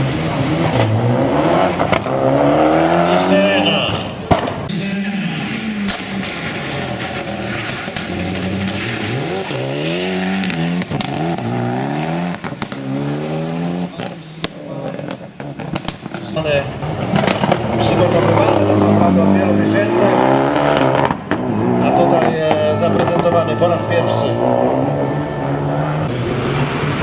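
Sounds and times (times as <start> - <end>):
rally car engine revving: 0.0 - 27.0
announcer speaking over public address: 3.0 - 4.0, 17.7 - 21.0, 21.7 - 25.5.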